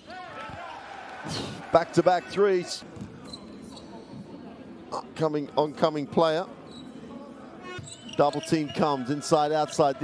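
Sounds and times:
low noise of play in hall: 0:00.0 - 0:10.0.

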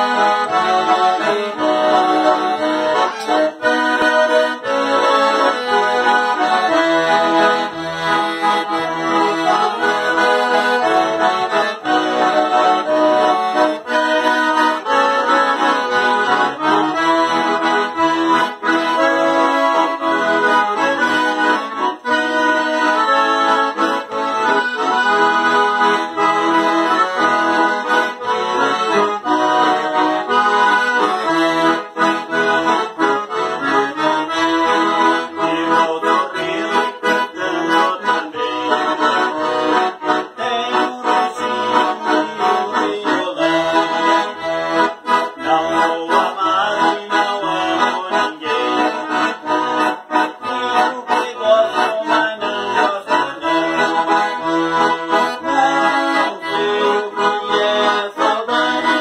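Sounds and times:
accordion duet playing waltz: 0:00.0 - 0:59.0.

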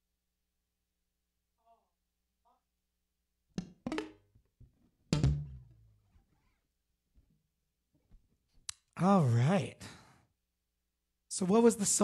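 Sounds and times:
knocks on guitar body: 0:05.1 - 0:05.6
guitar thump with low ringing: 0:05.1 - 0:06.0.

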